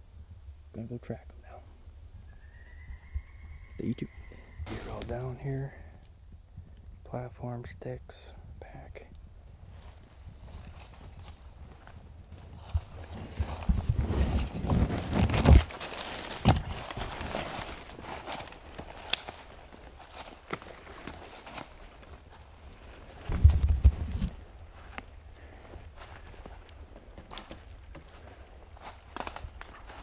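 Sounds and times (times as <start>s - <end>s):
footsteps crunching dry leaves: 4.6s - 5.2s, 9.7s - 30.0s.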